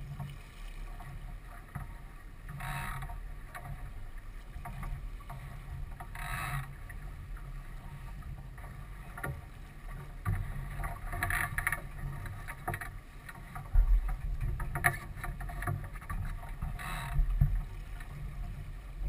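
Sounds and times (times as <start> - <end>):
water splashing against hull: 0.0 - 19.0.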